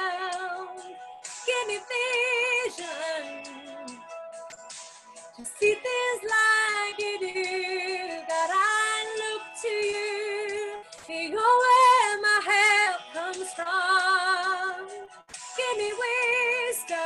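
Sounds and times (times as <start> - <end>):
woman singing with vibrato: 1.4 - 4.0, 5.4 - 15.0, 15.6 - 17.0.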